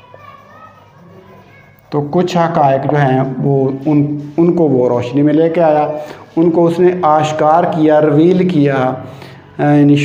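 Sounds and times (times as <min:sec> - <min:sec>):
marker squeaking on whiteboard: 0:00.0 - 0:08.7.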